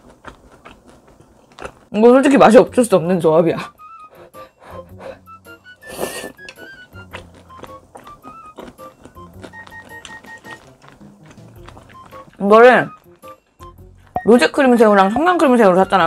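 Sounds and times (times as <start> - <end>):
crunch of biting fried shrimp: 0.0 - 1.9, 5.8 - 12.4
light background music: 1.9 - 16.0.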